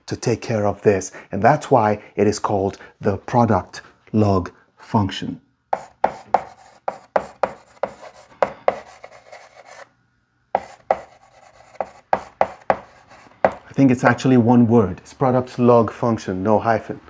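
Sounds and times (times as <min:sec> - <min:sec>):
chalk scratching on blackboard: 0:05.8 - 0:09.9, 0:10.6 - 0:13.6.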